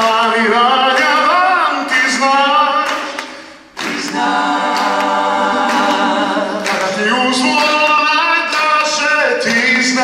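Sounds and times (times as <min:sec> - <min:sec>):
group singing: 0:00.0 - 0:10.0.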